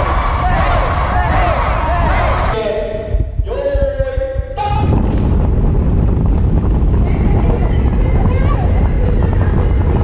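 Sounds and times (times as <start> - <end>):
group shouting: 0.0 - 2.6.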